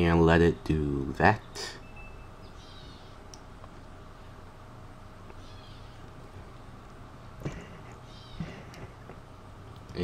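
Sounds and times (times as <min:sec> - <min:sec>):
low hum: 0:00.0 - 0:10.0
faint high chirps: 0:01.3 - 0:03.4, 0:05.3 - 0:06.1.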